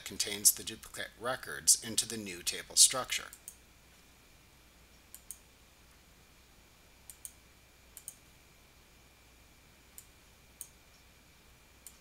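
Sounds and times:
computer mouse clicks: 5.1 - 5.4, 7.1 - 7.4, 8.0 - 8.2, 9.9 - 11.0, 11.8 - 12.0.

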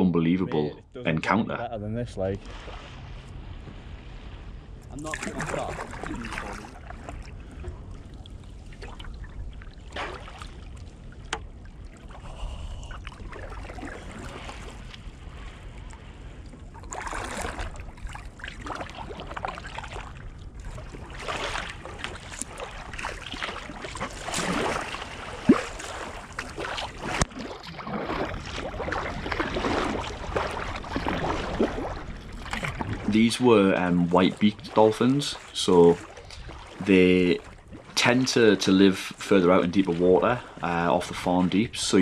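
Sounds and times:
wind rumble on camera: 1.6 - 33.6
paddle strokes: 2.2 - 42.0
water splashing against kayak hull: 2.3 - 42.0.

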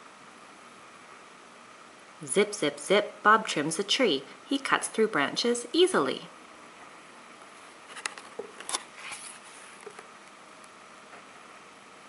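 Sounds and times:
faint steady hiss: 0.0 - 12.0
cardboard page turning: 7.9 - 10.1.

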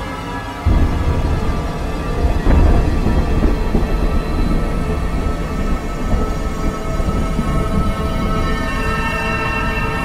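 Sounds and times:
dark music drone: 0.0 - 10.0
rain: 0.0 - 10.0
thunder rumbling: 0.6 - 10.0.

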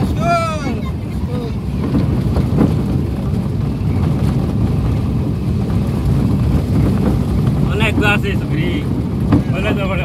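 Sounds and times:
vehicle engine and tyre rumble: 0.0 - 10.0.

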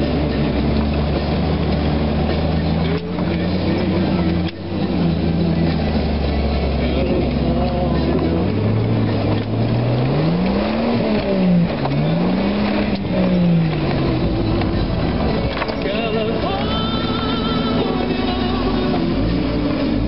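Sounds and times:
off-road vehicle engine revving: 0.0 - 20.0.

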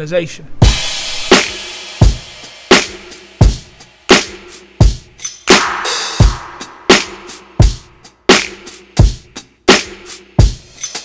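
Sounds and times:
cymbal wash: 0.6 - 4.7, 5.5 - 8.0
kick and snare drum beat: 0.6 - 10.7.

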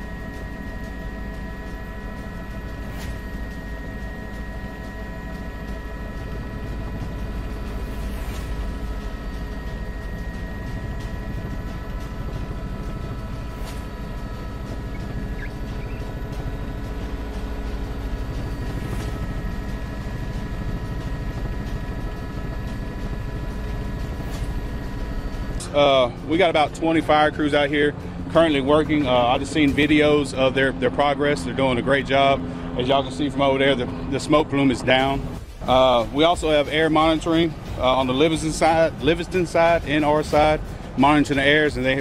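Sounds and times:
helicopter engine and rotor: 0.0 - 42.0.

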